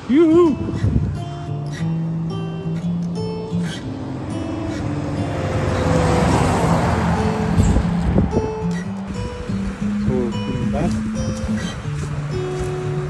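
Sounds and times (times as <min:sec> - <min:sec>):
acoustic guitar music: 0:00.0 - 0:13.0
truck driving past: 0:02.7 - 0:09.9.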